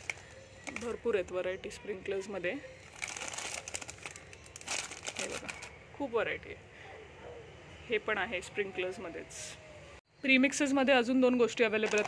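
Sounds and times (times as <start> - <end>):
plastic packets crinkling: 0.0 - 1.4, 2.7 - 5.8.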